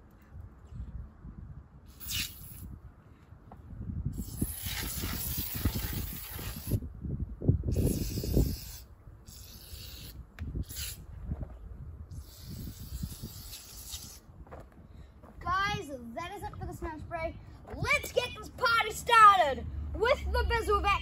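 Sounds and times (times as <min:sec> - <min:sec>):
aerosol spray can hissing: 0:02.0 - 0:02.6, 0:04.2 - 0:06.8, 0:07.8 - 0:11.0, 0:12.2 - 0:14.2.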